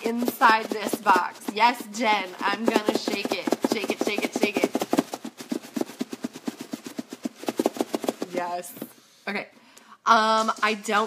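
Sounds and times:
contents knocking in shaken box: 0:00.0 - 0:08.7.

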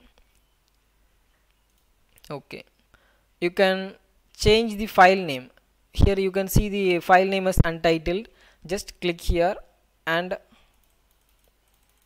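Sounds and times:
computer mouse clicks: 0:00.1 - 0:00.8, 0:01.4 - 0:02.3, 0:10.7 - 0:12.0
person speaking: 0:02.1 - 0:02.8, 0:03.4 - 0:10.7.

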